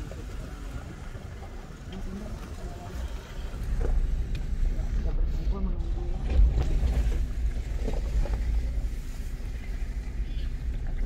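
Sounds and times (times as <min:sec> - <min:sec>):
motor vehicle rumble: 0:00.0 - 0:11.0.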